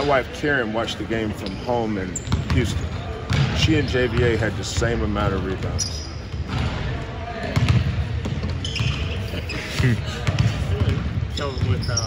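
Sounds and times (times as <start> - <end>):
basketballs bouncing on hardwood: 2.3 - 5.7, 7.5 - 9.0, 9.8 - 11.9.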